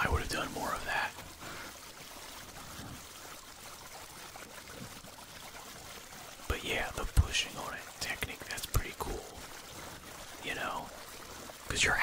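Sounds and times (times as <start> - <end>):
water trickling through pipe: 0.0 - 12.0.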